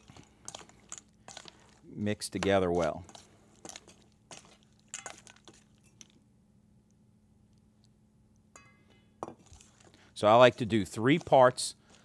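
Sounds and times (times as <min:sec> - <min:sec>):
utensil clinking in steel bowl: 0:02.2 - 0:06.2, 0:08.6 - 0:09.8.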